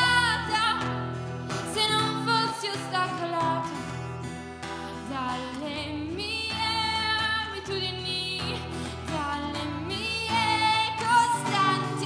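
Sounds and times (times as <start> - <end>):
woman singing: 0.0 - 4.1, 4.7 - 12.0
acoustic guitar strumming: 0.0 - 12.0.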